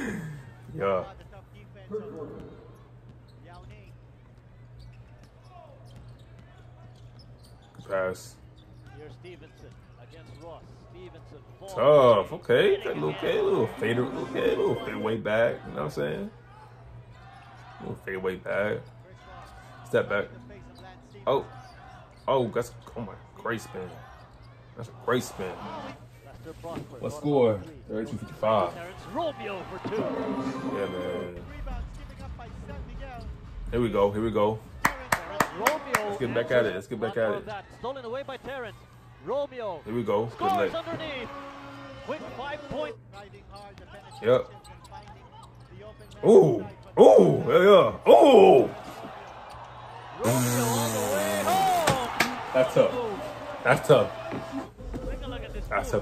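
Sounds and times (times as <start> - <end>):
quiet arena ambience: 0.0 - 56.0
man speaking: 11.7 - 16.3.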